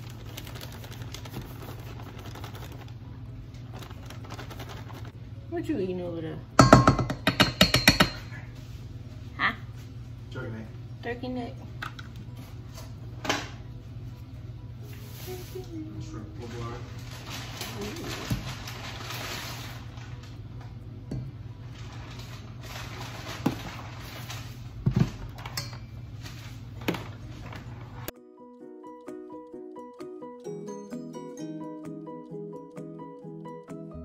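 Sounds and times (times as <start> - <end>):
music: 12.1 - 17.8, 28.1 - 34.0.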